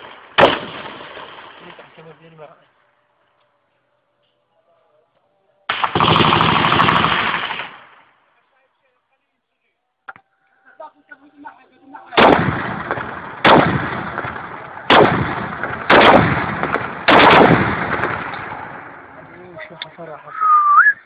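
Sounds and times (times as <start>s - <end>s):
heavy weapons blasts echoing: 5.7s - 8.0s, 12.2s - 19.4s.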